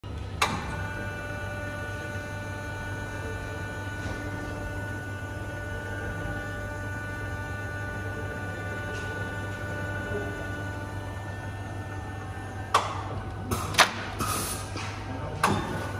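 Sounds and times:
printing press humming and whining: 0.0 - 15.9.

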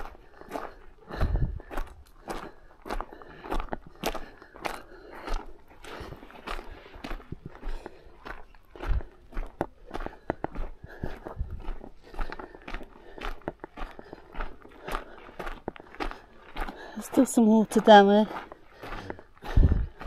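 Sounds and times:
footsteps crunching on stony trail: 0.0 - 20.0.

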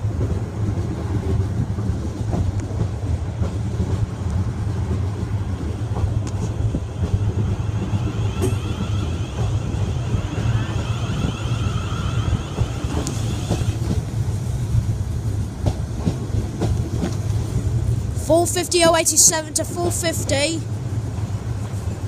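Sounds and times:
train wheels rumbling: 0.0 - 22.0
wavering high whine: 6.3 - 13.9.

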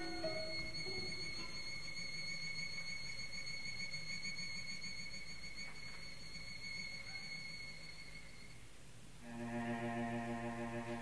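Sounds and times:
low recording hum: 0.0 - 11.0.

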